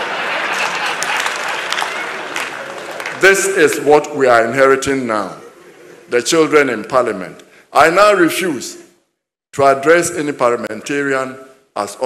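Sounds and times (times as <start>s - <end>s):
audience applauding: 0.0s - 3.6s.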